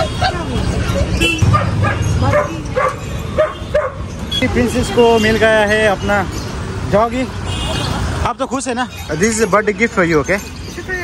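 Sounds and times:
puppies yipping: 0:01.2 - 0:04.2.

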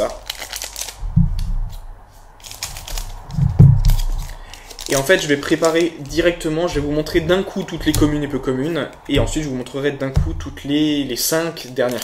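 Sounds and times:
foil wrapper crinkling: 0:00.0 - 0:09.1, 0:11.2 - 0:12.0
dull handling thumps: 0:01.0 - 0:02.0, 0:03.2 - 0:04.3, 0:06.0 - 0:11.2.

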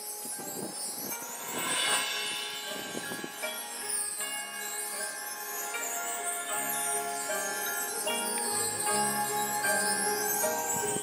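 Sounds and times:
bell and chime shimmer: 0:00.0 - 0:11.0
mallet percussion chords: 0:00.0 - 0:11.0.

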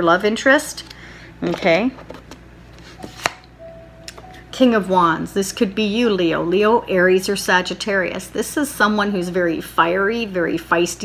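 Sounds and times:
card snap: 0:03.0 - 0:04.3.

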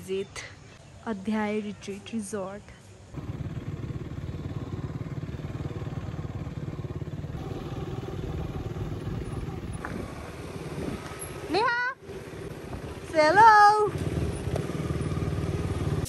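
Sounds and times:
motor scooter running: 0:03.2 - 0:16.0.

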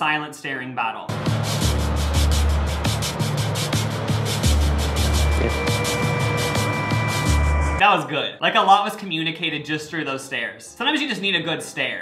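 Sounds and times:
tense background music: 0:01.1 - 0:07.8.

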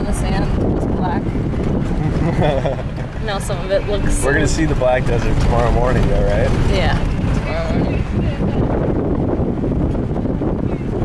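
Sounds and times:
vehicle engine and tyres rumbling: 0:00.0 - 0:11.0
wind buffeting microphone: 0:00.0 - 0:11.0.

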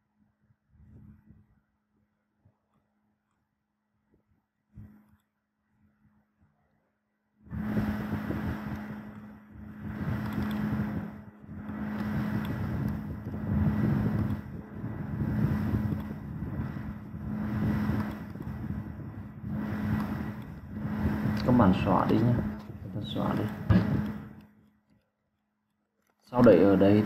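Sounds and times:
low hum: 0:04.2 - 0:25.0
loud rumbling noise: 0:07.5 - 0:24.5.

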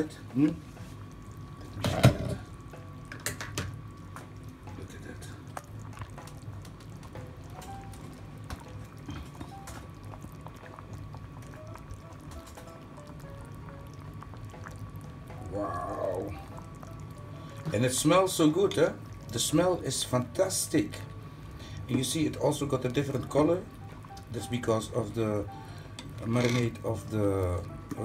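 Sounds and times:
soup bubbling with small pops: 0:00.2 - 0:28.0.

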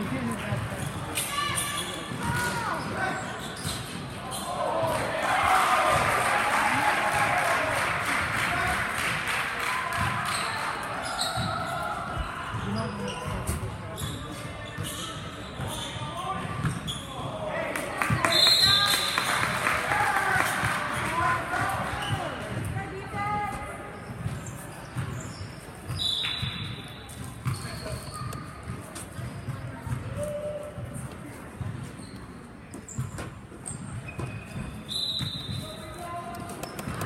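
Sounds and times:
crowd chatter: 0:00.0 - 0:37.0
sneakers squeaking on floor: 0:00.1 - 0:04.8, 0:10.0 - 0:17.4, 0:21.9 - 0:37.0.

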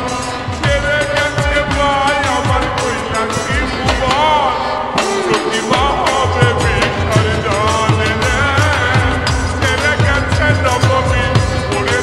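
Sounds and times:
deep kick drum beats: 0:00.0 - 0:12.0
slowed reverb-heavy song: 0:00.0 - 0:12.0.

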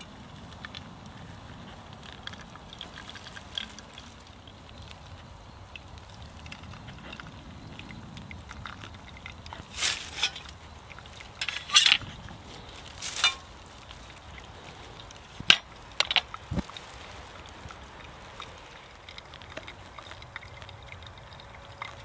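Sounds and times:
metal pot scraping and clattering: 0:09.6 - 0:12.2, 0:12.8 - 0:13.5.

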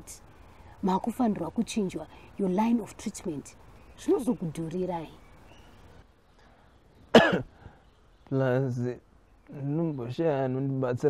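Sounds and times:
sharp cough: 0:07.1 - 0:07.6.

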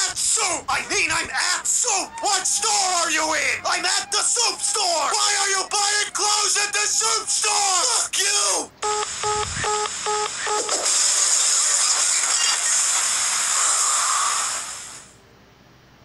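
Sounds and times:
short electronic beeps: 0:08.8 - 0:10.7
steady hiss: 0:09.1 - 0:15.3.

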